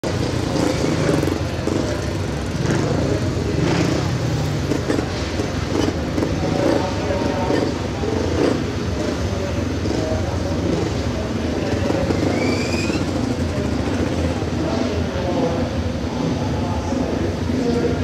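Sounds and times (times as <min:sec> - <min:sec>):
motorcycle engines racing: 0:00.0 - 0:18.0
people's voices: 0:00.0 - 0:18.0.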